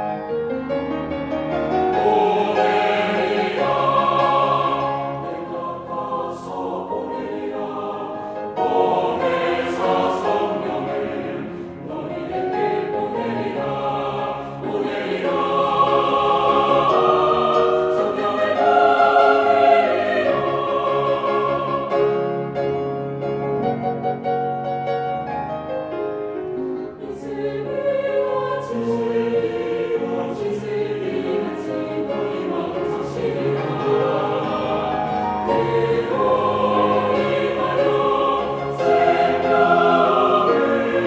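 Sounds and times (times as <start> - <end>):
piano accompaniment: 0.0 - 41.0
choir singing: 1.5 - 22.8, 26.9 - 41.0.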